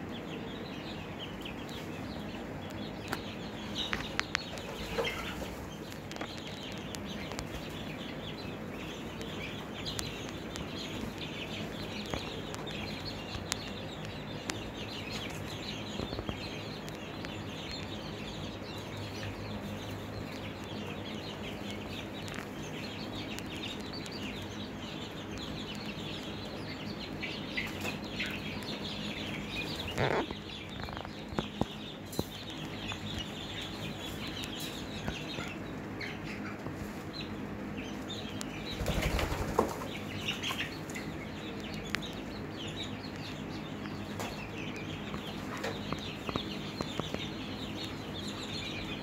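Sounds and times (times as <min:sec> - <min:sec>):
chicks peeping and chirping: 0:00.0 - 0:49.0.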